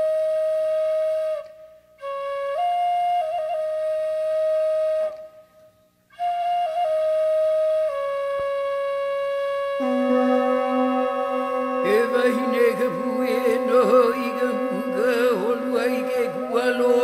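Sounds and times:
flute-like melody: 0.0s - 5.6s, 6.2s - 17.0s
low held note: 9.8s - 17.0s.

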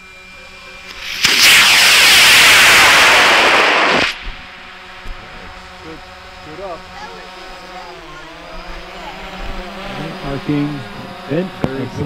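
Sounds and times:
rocket motor rushing noise: 0.0s - 12.0s
rocket ignition crack: 0.8s - 6.0s.

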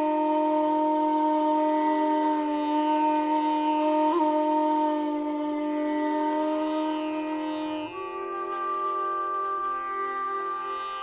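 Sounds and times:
bamboo flute holding low note: 0.0s - 11.0s.

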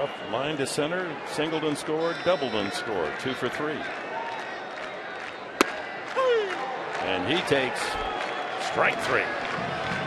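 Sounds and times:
ball popping into catcher's mitt: 5.6s - 5.9s.

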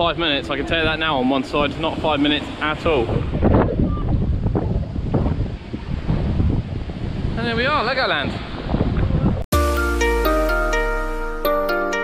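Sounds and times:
wind buffeting microphone: 0.0s - 9.5s
music with struck notes: 9.5s - 12.0s.

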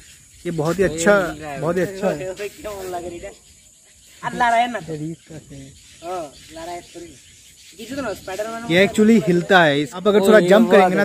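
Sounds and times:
people talking indistinctly: 0.0s - 11.0s.

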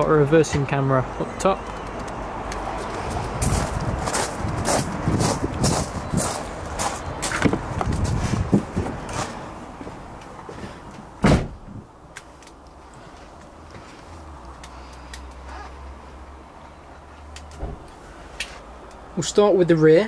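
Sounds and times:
footsteps crunching on gravel: 2.8s - 10.0s
loud thump: 11.2s - 11.8s, 17.6s - 17.9s.

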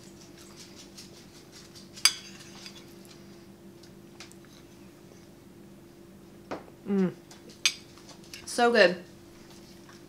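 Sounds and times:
metal fork clinking on plate: 2.0s - 2.8s.

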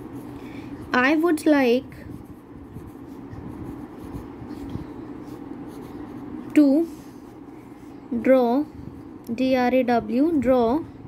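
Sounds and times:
steady low hum: 0.0s - 11.0s
person speaking: 0.8s - 3.0s, 5.3s - 7.2s
pen scratching on paper: 2.0s - 7.0s.

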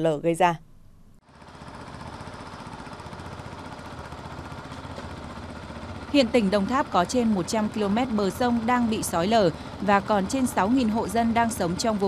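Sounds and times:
small engine running: 1.2s - 12.0s.

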